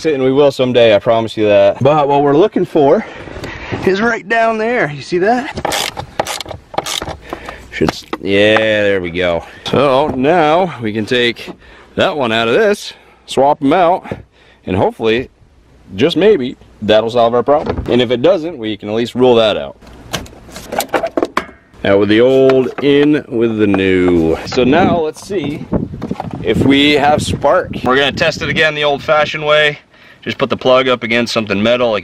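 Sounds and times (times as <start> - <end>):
person speaking: 6.8 - 15.3, 21.8 - 25.7
metal knocks: 20.1 - 21.8.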